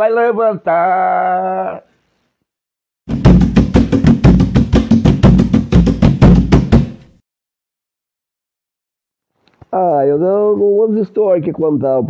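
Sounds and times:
fast drumming: 3.1 - 7.0.

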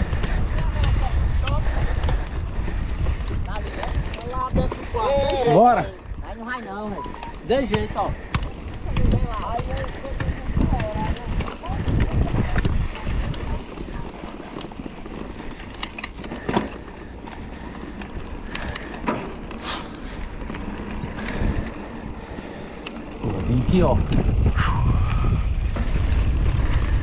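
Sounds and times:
bike clicks and rattles: 0.0 - 27.0
tyres rumbling on dirt: 0.0 - 27.0.

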